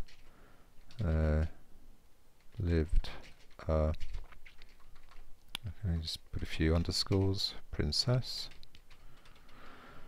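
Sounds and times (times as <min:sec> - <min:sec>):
sharp keyboard click: 0:02.4 - 0:06.1, 0:06.7 - 0:07.4, 0:08.5 - 0:09.6.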